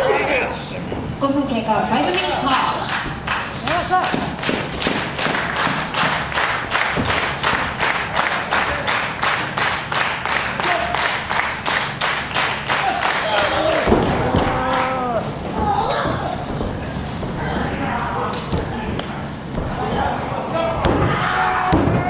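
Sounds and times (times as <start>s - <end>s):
rhythmic hand clapping: 2.1s - 15.1s.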